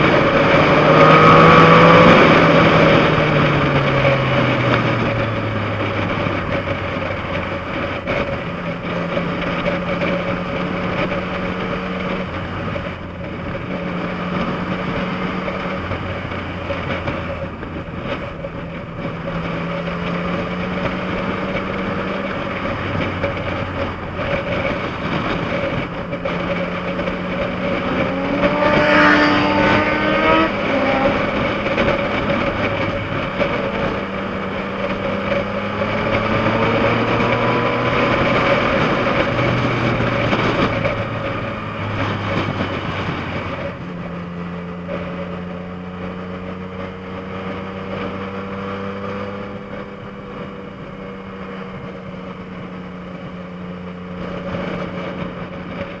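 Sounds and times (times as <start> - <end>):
motorcycle engine running: 0.0 - 56.0
road noise: 0.0 - 56.0
wind noise: 0.0 - 56.0.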